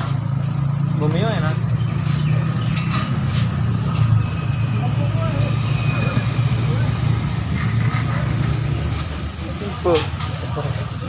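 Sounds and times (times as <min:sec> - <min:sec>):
vehicle engine rumbling: 0:00.0 - 0:11.0
faint voices: 0:04.2 - 0:11.0.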